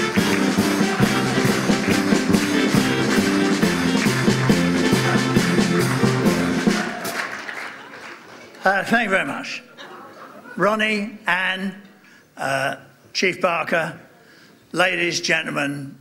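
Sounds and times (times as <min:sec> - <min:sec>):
small band playing up-tempo music: 0:00.0 - 0:07.6.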